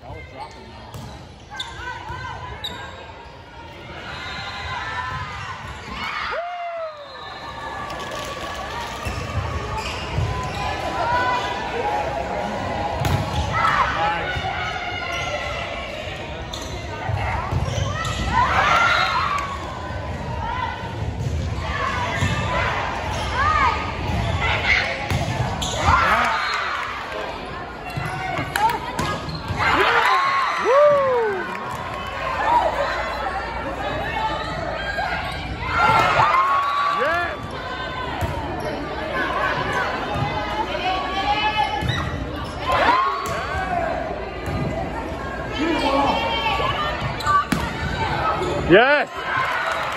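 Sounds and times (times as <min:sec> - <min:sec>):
voices around court: 0:00.0 - 0:49.9
sneaker squeaks: 0:00.1 - 0:03.4, 0:08.8 - 0:10.9, 0:16.4 - 0:19.4, 0:23.1 - 0:24.5, 0:25.1 - 0:26.8, 0:27.8 - 0:29.8, 0:41.8 - 0:43.4, 0:47.0 - 0:48.7.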